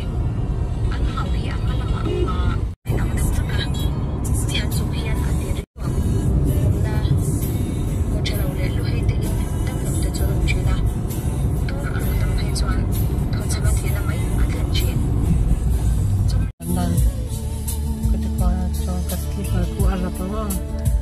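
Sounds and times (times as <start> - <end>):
car road and engine rumble: 0.0 - 21.0
voices: 0.9 - 7.3, 11.6 - 15.1
music: 1.0 - 21.0.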